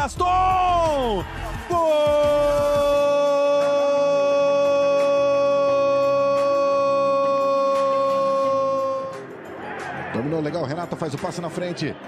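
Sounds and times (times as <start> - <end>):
commentator goal cry: 0.2 - 9.2.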